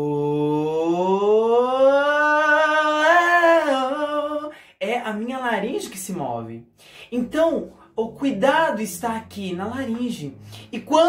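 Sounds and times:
man singing a gliding vowel: 0:00.0 - 0:05.3, 0:07.0 - 0:11.0.

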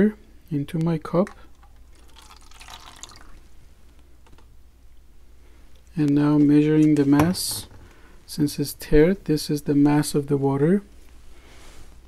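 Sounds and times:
water dripping into cup: 0:01.2 - 0:03.5.

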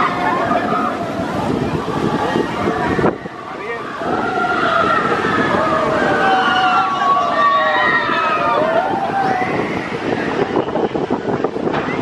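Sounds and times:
roller coaster train rumbling: 0:00.0 - 0:12.0.

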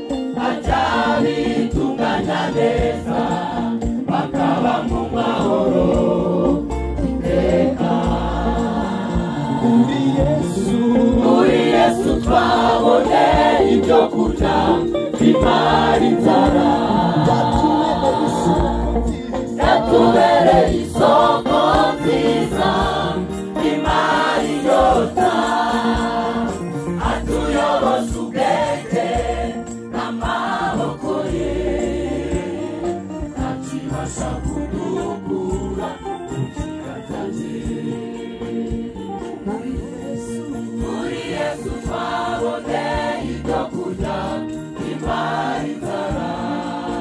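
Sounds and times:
choir singing gospel: 0:00.0 - 0:47.0.

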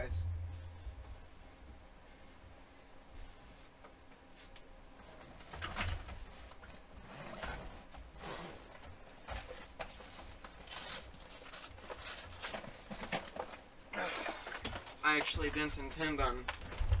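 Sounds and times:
rummaging through fishing tackle: 0:09.2 - 0:15.3.

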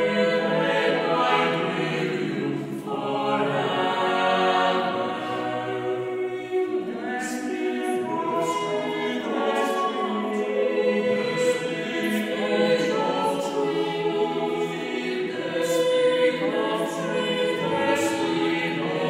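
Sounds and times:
a cappella choir singing: 0:00.0 - 0:19.0.

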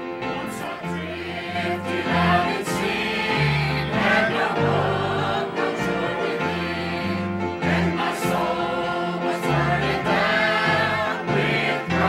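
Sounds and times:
choir singing a hymn: 0:00.0 - 0:12.0.

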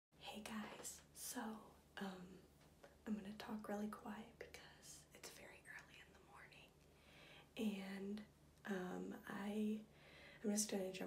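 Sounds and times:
woman half-whispering: 0:00.2 - 0:02.4.

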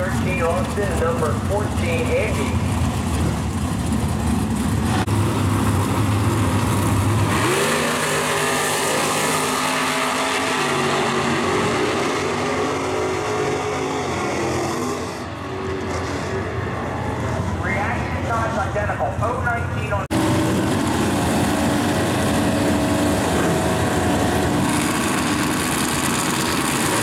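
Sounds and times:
drag racing car engines accelerating: 0:00.0 - 0:27.0.

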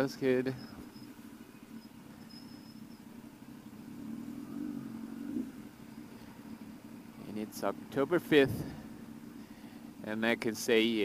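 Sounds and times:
motorcycle engine humming: 0:00.0 - 0:11.0.

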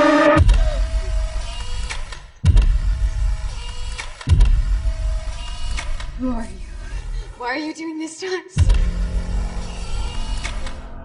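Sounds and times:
deep boom hits: 0:00.0 - 0:01.4, 0:08.6 - 0:09.9.

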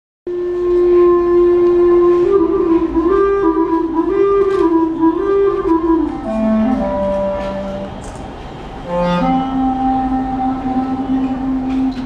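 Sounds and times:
wooden flute melody: 0:00.3 - 0:12.0.

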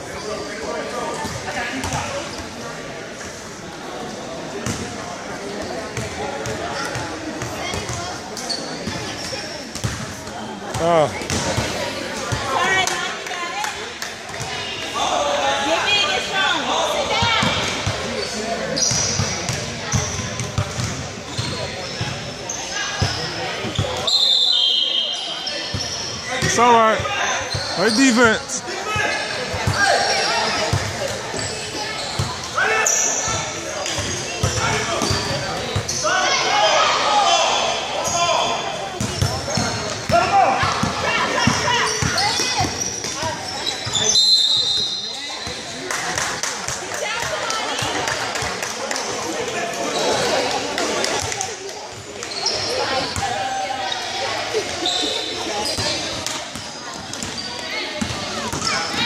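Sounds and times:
spectators chatting and shouting: 0:00.0 - 0:59.0
basketball bouncing on gym floor: 0:09.7 - 0:10.0, 0:10.7 - 0:11.7, 0:19.2 - 0:21.5.

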